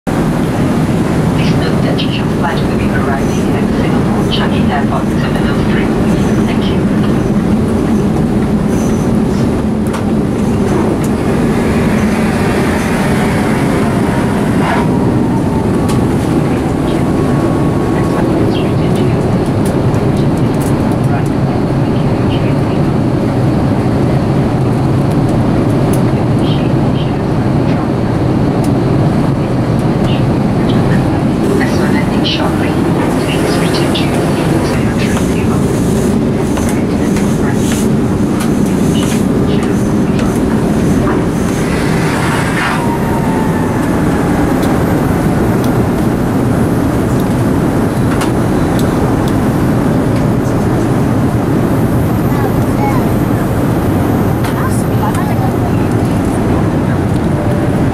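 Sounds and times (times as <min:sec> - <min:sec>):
aircraft cabin engine rumble: 0:00.0 - 0:57.9.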